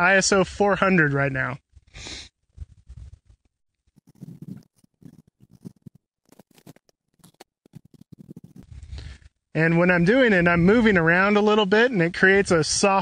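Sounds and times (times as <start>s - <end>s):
footsteps in dry grass: 4.0s - 9.2s.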